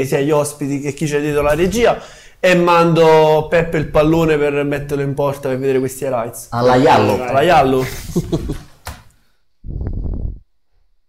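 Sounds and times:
men's voices: 0:00.0 - 0:08.6.

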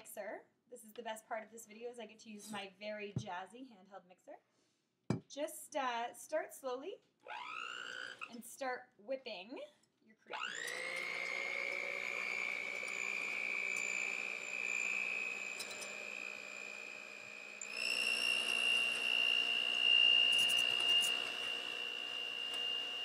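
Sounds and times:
electric mixer whining: 0:07.3 - 0:08.3, 0:10.3 - 0:23.0.

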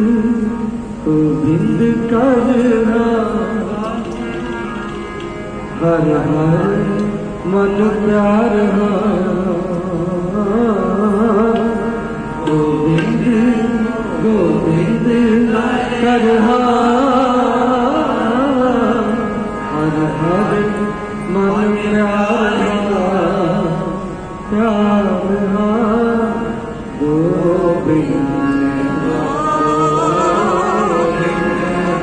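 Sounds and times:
harmonium drone: 0:00.0 - 0:32.0
man singing melodic line: 0:00.0 - 0:32.0.

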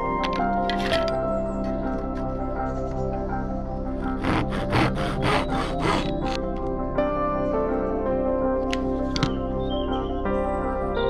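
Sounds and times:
background music: 0:00.0 - 0:11.0
hand saw cutting wood: 0:04.2 - 0:06.4.

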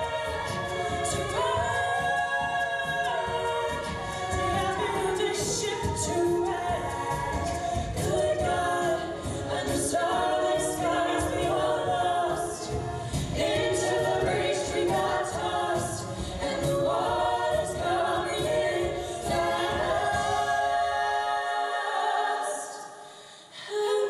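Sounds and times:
vocal group singing in harmony: 0:00.0 - 0:24.0.

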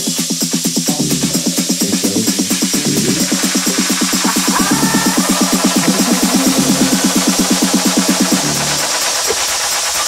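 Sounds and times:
pulsing synth dance music: 0:00.0 - 0:10.0.

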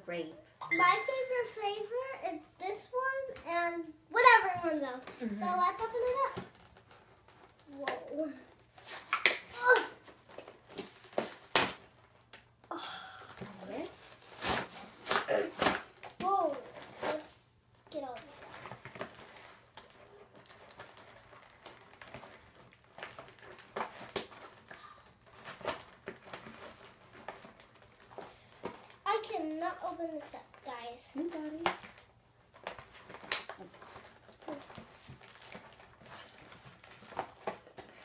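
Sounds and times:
child's voice: 0:00.7 - 0:06.5, 0:07.6 - 0:08.5, 0:09.5 - 0:10.0, 0:16.2 - 0:18.4, 0:29.1 - 0:31.7
toy packaging crinkling: 0:05.5 - 0:12.4, 0:17.9 - 0:38.0.

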